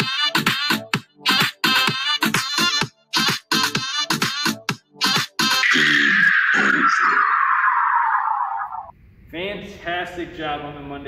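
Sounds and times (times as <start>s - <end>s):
man talking: 9.3s - 11.0s.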